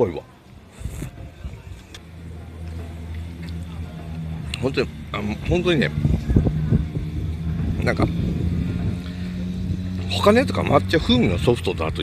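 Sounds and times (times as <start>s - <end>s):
car engine running: 1.5s - 12.0s.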